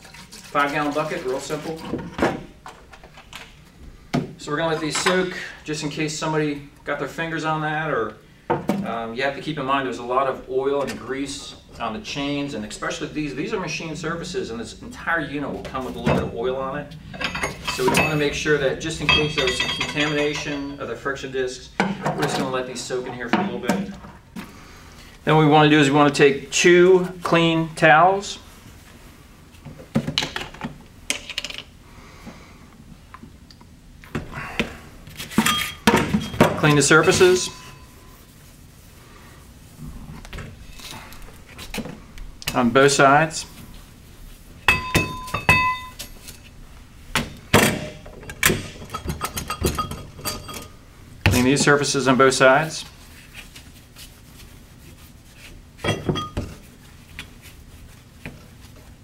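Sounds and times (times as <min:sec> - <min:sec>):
metal plates clinking: 0:17.0 - 0:21.0, 0:35.4 - 0:38.0, 0:44.6 - 0:46.4, 0:47.7 - 0:50.8
metallic clinks: 0:17.1 - 0:20.9, 0:44.7 - 0:46.1
cloth rubbing over steel plate: 0:36.7 - 0:41.7.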